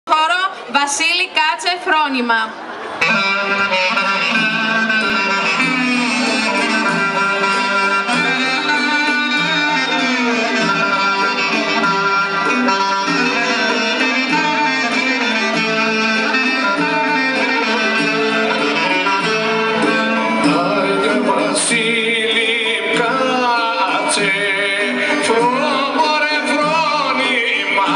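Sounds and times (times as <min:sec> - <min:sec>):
folk dance music clarinet: 0:02.8 - 0:27.9
plucked strings: 0:03.0 - 0:27.9.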